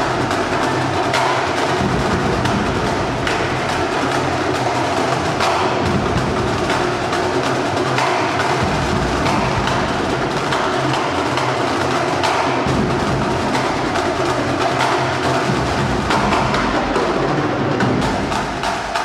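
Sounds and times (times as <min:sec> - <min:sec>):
fast snare drumming: 0:00.0 - 0:19.0.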